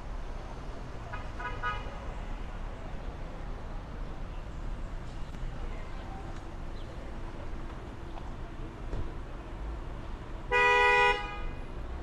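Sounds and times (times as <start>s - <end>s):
street traffic rumble: 0.0s - 12.0s
car horn short toots: 10.5s - 11.5s.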